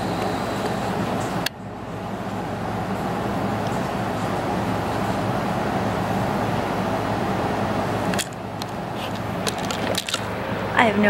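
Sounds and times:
low hum and hiss: 0.0s - 11.0s
camera handling clicks and knocks: 9.4s - 10.3s.

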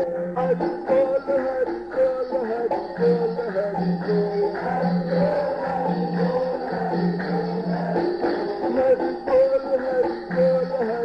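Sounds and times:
devotional chant singing: 0.0s - 11.0s
musical accompaniment: 0.0s - 11.0s.

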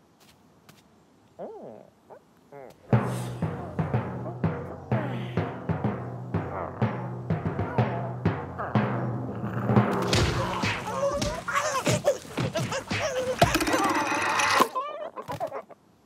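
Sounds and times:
squawking voices: 1.4s - 15.8s
cartoon score with timpani rolls: 2.9s - 14.8s
thumps and whacks: 9.8s - 14.0s.

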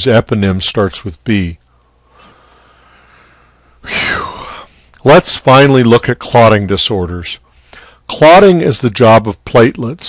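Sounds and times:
person breathing in: 1.8s - 4.9s, 7.5s - 8.1s.

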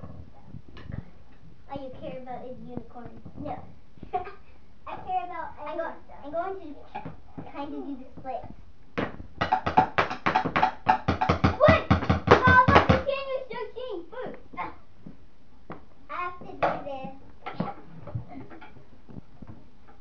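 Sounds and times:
child's voice: 1.7s - 8.6s, 11.6s - 14.8s, 16.1s - 17.7s
fast sharp taps: 9.0s - 13.2s
scattered knocks: 9.0s - 13.2s.

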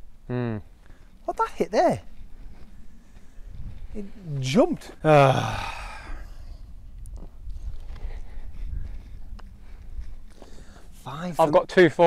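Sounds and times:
wind rumble on microphone: 2.1s - 11.1s.

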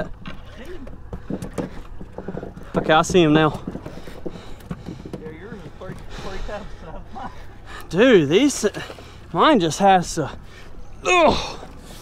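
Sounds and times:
handling noise: 0.0s - 6.1s.

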